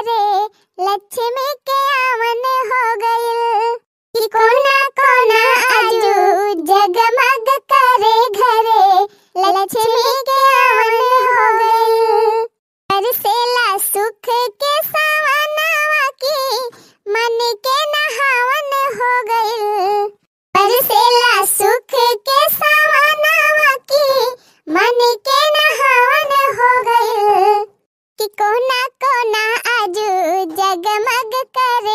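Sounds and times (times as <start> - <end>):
woman singing unaccompanied: 0.0 - 31.9
singer breathing: 0.5 - 0.8, 9.0 - 9.4, 16.7 - 17.1, 24.4 - 24.7.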